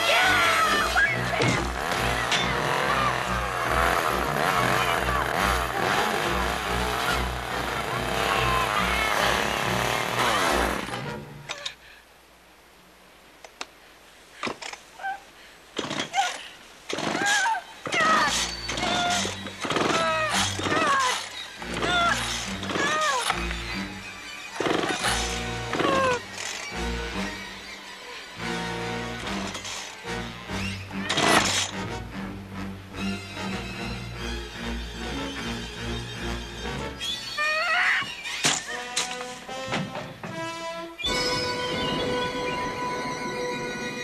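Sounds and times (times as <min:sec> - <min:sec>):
woman screaming: 0:00.0 - 0:01.5, 0:08.0 - 0:09.5, 0:21.8 - 0:23.3
tense film score: 0:00.0 - 0:11.8, 0:16.3 - 0:44.0.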